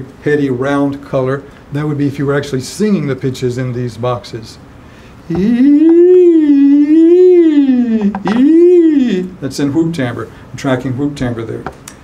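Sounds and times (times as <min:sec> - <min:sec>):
man singing hooty vowel: 0:05.2 - 0:09.4.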